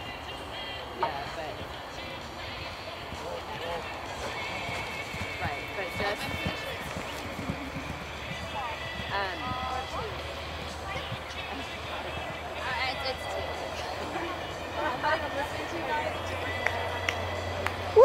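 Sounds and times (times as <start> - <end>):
background music: 0.0 - 18.0
distant voices: 0.0 - 18.0
horse hoofbeats on grass: 1.0 - 17.9.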